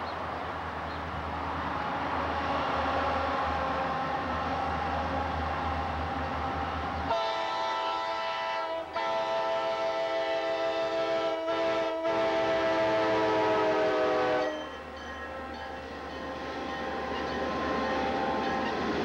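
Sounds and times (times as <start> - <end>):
locomotive engine drone: 0.0 - 19.0
locomotive air horn: 7.1 - 15.6.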